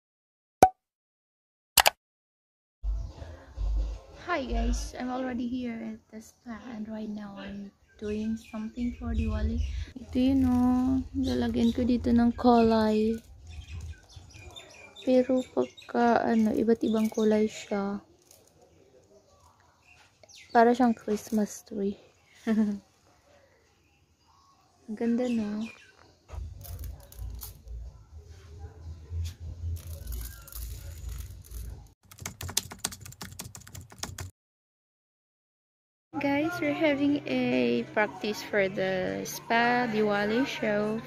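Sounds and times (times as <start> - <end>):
woman speaking: 4.2 - 13.2, 15.1 - 18.0, 20.6 - 22.0, 24.9 - 25.7, 36.2 - 41.0
rice grains being sprinkled: 29.8 - 31.7.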